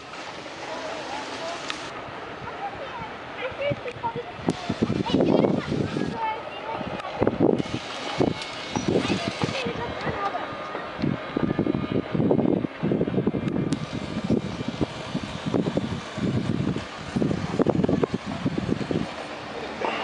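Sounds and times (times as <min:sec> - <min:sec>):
indistinct voices talking: 0:00.0 - 0:12.3.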